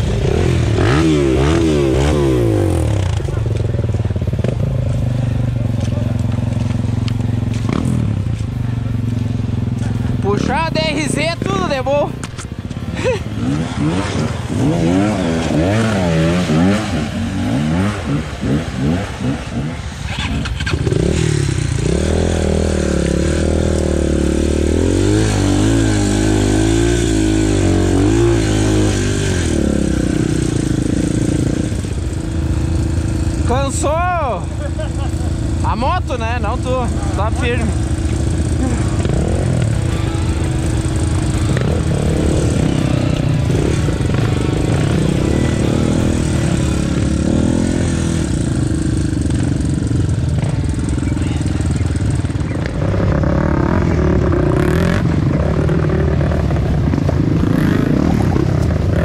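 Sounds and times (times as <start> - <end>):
dirt bike engine running: 0.0 - 59.0.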